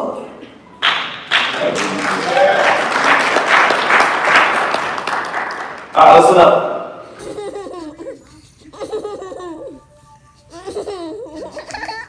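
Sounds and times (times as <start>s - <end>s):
baby laughing: 7.1s - 12.0s.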